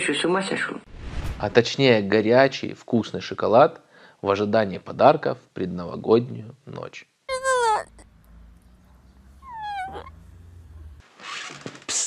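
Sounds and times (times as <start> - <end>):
high-pitched whining vocal sound: 7.3 - 11.0
low hum: 7.9 - 11.0.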